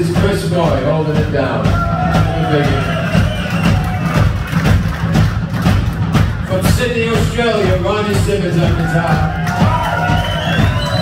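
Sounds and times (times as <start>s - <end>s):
drums steady beat: 0.0s - 11.0s.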